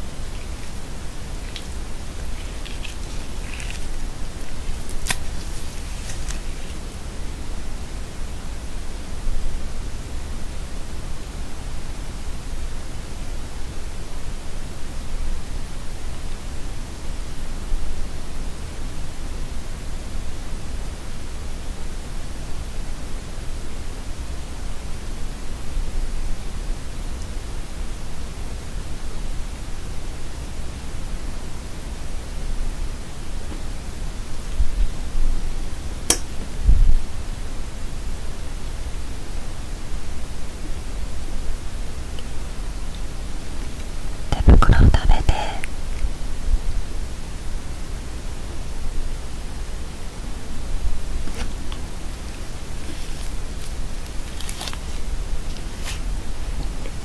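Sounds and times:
steady hiss: 0.0 - 57.0.

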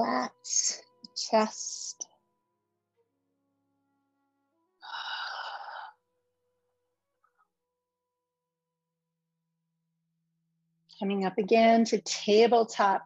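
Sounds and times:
faint background music tones: 0.0 - 6.0
woman exhaling: 4.8 - 5.9.

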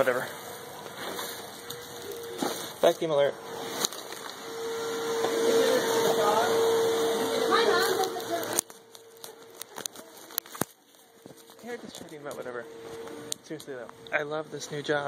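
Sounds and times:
vacuum cleaner whining: 0.0 - 15.0.

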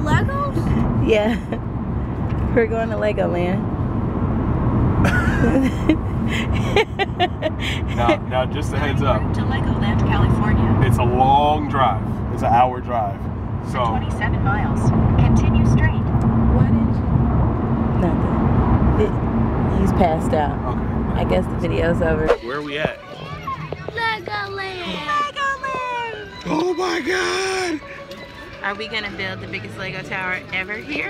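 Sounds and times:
car engine and road noise: 0.0 - 31.0
child's excited high voice: 23.0 - 26.3.

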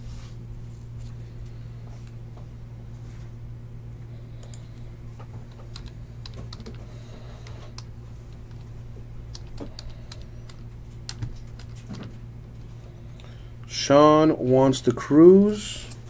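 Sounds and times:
steady low hum: 0.0 - 16.0
keyboard typing: 5.4 - 8.7, 9.3 - 11.9.

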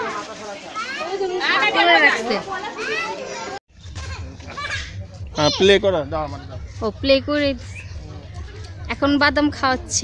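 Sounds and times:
children chattering and calling out: 0.0 - 6.0, 6.6 - 10.0.

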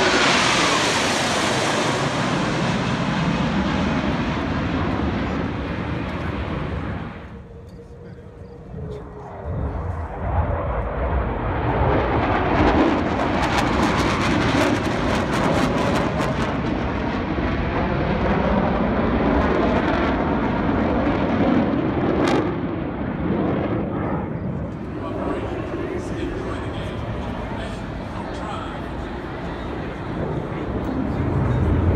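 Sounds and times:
jet roar: 0.0 - 31.9.

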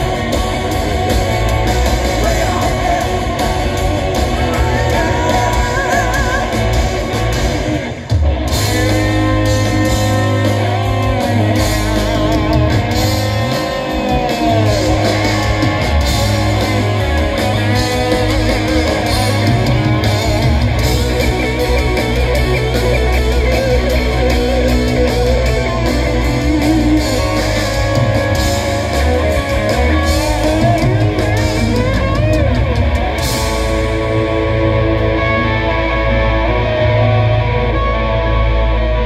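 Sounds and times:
electric guitar bending notes: 0.0 - 39.0
rock band playing loudly: 0.0 - 39.0.

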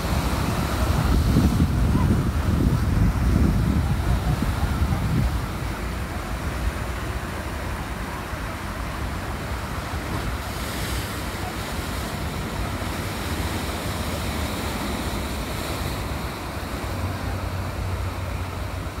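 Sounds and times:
wind buffeting microphone: 0.0 - 7.6
surf washing over rocks: 0.0 - 19.0.

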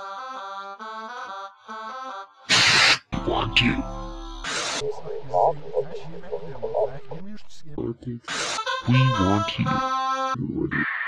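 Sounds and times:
tinny voice as through radio: 4.6 - 8.0.

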